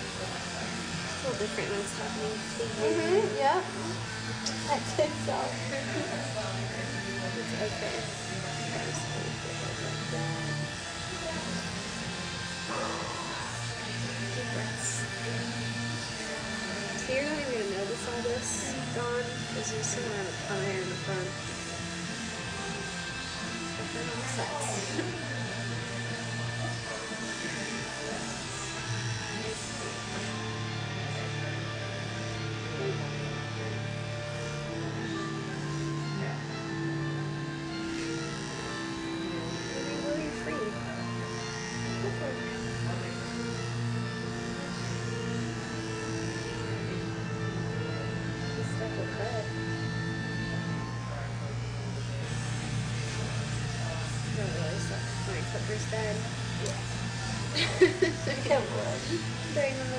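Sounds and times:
background music: 0.0s - 59.9s.

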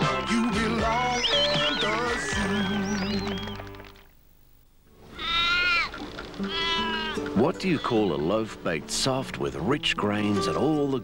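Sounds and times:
farm animal calls: 0.0s - 3.7s, 5.0s - 8.4s
faint background music: 4.8s - 11.0s.

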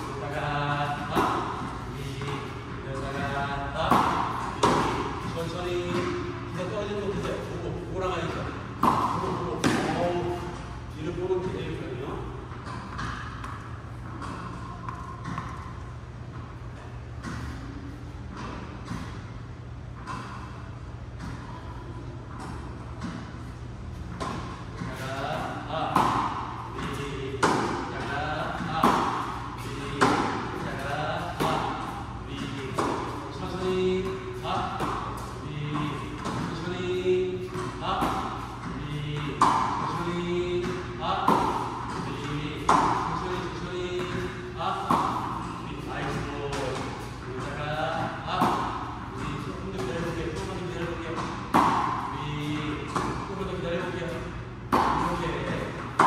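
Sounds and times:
racket hitting tennis balls: 0.0s - 56.0s.

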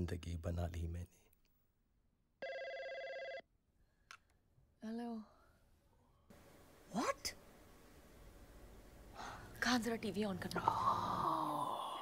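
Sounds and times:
electronic telephone ring: 2.4s - 3.4s.

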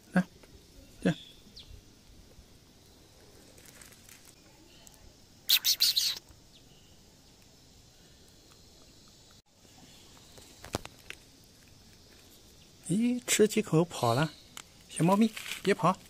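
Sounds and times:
faint outdoor background: 0.0s - 16.0s
high bird chirps: 5.5s - 7.0s.

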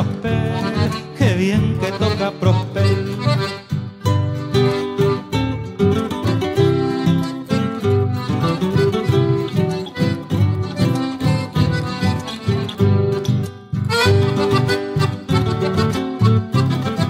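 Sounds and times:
folk dance music with guitars: 0.0s - 17.0s.

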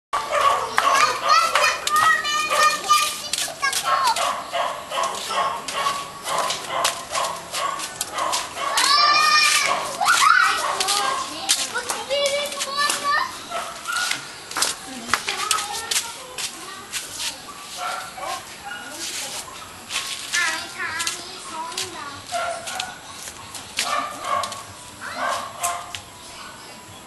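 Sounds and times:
voices chattering and calling out: 0.2s - 27.0s.

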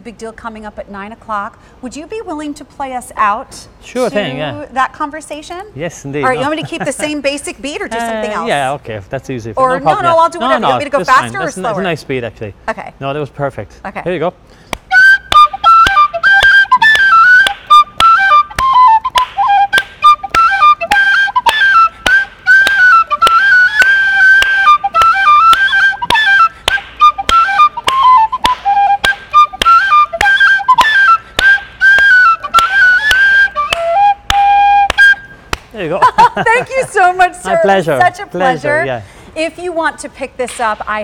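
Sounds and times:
hand claps: 14.7s - 35.8s
tin whistle playing lively tune: 14.9s - 35.5s.

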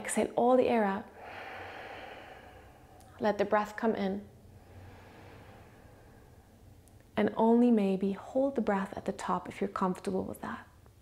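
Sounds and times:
woman exhaling: 1.1s - 3.1s, 4.6s - 6.7s.

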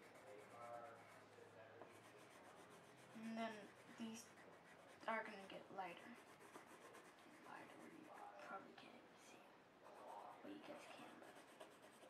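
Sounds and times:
colored pencil rubbing on paper: 0.0s - 8.7s, 9.8s - 12.0s.

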